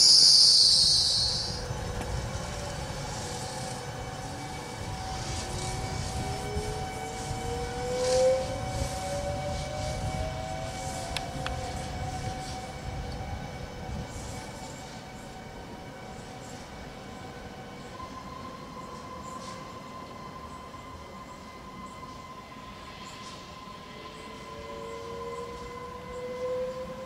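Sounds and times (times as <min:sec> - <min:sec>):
electric train hum and whine: 0:00.0 - 0:27.0
train wheel squeal: 0:00.0 - 0:27.0.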